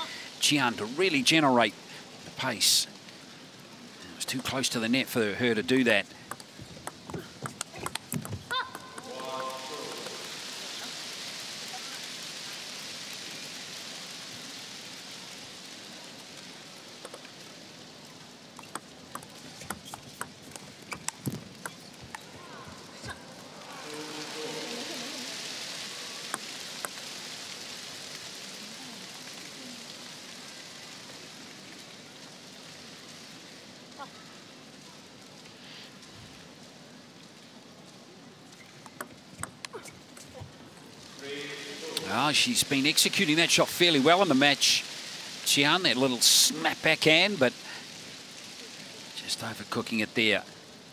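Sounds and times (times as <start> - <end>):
table tennis ball tapping: 6.3 - 9.1
applause: 6.8 - 11.1
person shouting: 8.5 - 10.0.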